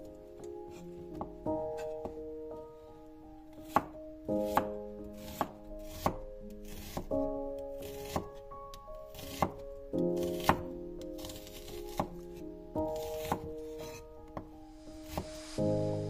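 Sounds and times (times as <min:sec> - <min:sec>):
soft background music: 0:00.0 - 0:16.0
knife chopping on wooden board: 0:03.6 - 0:07.1, 0:07.8 - 0:08.4, 0:09.1 - 0:09.6, 0:10.2 - 0:12.2, 0:12.9 - 0:14.5, 0:15.1 - 0:15.4.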